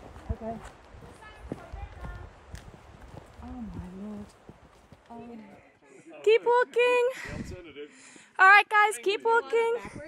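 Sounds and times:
footsteps on dirt trail: 0.0 - 5.8.

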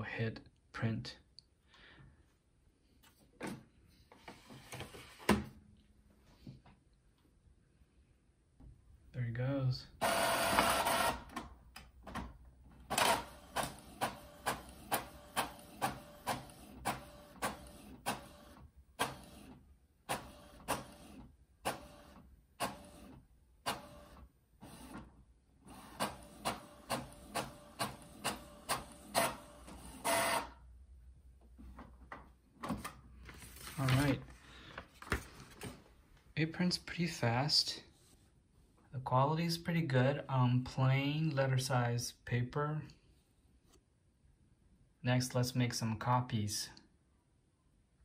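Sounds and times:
printer paper feed whir: 10.0 - 11.2, 25.7 - 30.5.

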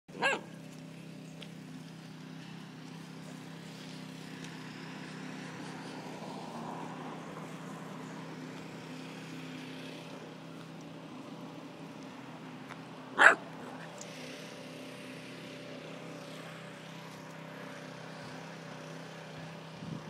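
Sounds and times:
puppy yip: 0.2 - 0.6, 13.2 - 13.4.

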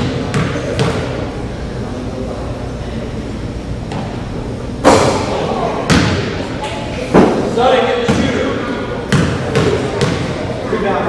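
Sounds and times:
voices in a hall: 0.0 - 11.0
basketball bouncing on wooden floor: 8.1 - 8.3, 9.1 - 10.3.

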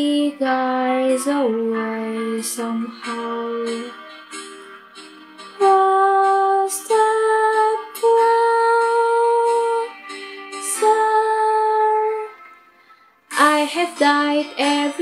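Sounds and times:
woman singing slow ballad: 0.0 - 4.1, 5.5 - 10.0, 10.6 - 12.4, 13.3 - 15.0.

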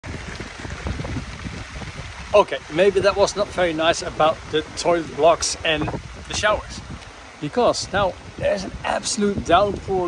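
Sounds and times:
heavy rain on a tent roof: 0.0 - 10.0.

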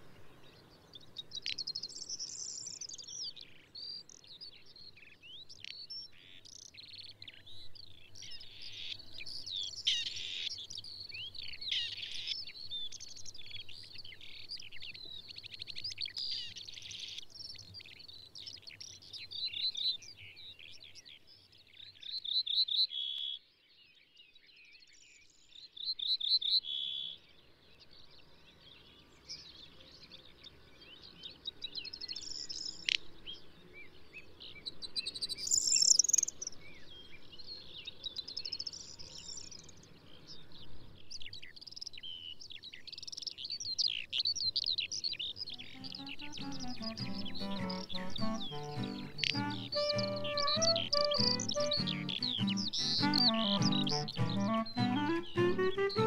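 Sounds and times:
birds chirping and warbling: 27.8 - 56.0
rapid bird trill: 45.6 - 56.0.

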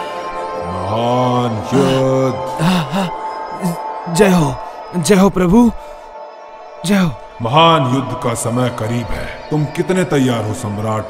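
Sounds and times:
low deep chanting: 0.0 - 5.8, 6.6 - 11.0
background music: 0.0 - 11.0.

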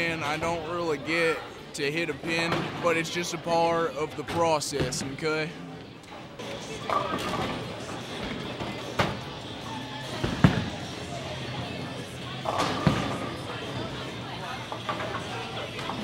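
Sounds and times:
chatter: 0.0 - 16.0
bowling ball thud and roll: 12.5 - 13.3.

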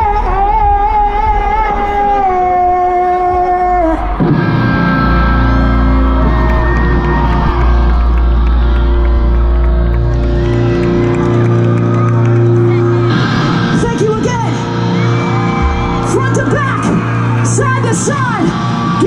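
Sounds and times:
live rock band playing: 4.1 - 19.0.

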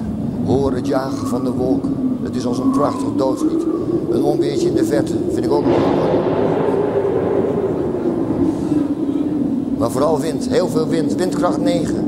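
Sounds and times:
low rumble: 0.0 - 12.0
wind howling: 0.0 - 12.0.

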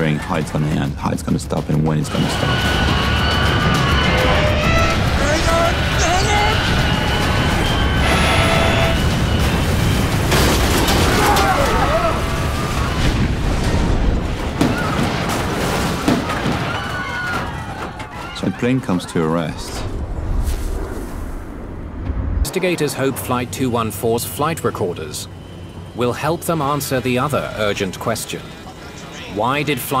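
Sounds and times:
dramatic music: 1.6 - 14.4
heavy crash rumble: 2.1 - 18.2, 19.6 - 23.4
booming impacts: 2.2 - 18.0, 19.8 - 23.4
people crying out: 11.0 - 13.2.

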